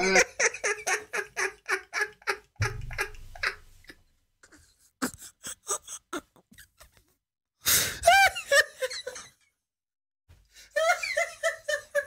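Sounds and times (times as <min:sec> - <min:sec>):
man laughing hard: 0:00.0 - 0:03.7.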